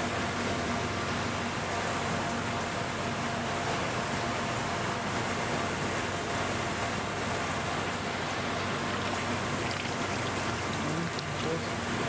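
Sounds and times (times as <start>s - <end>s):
low steady hum: 0.0s - 12.0s
water rushing and splashing: 0.0s - 12.0s.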